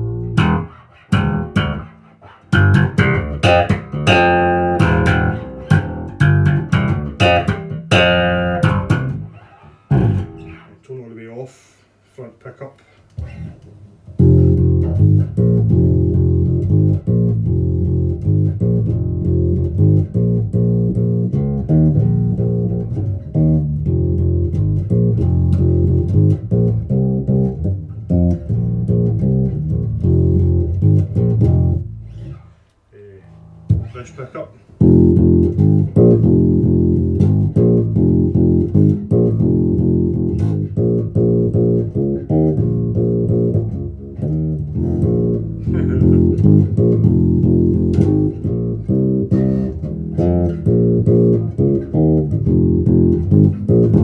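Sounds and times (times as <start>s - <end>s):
plucked electric bass notes: 0.0s - 10.8s, 13.2s - 32.5s, 33.2s - 34.1s, 34.8s - 54.0s.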